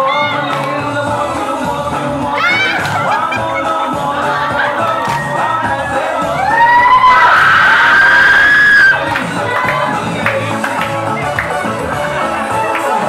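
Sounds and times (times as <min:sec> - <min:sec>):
dance music with group singing: 0:00.0 - 0:13.0.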